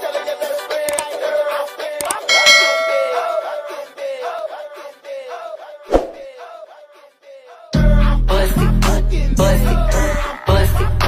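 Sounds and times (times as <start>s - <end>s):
sharp thump: 5.9s - 6.2s.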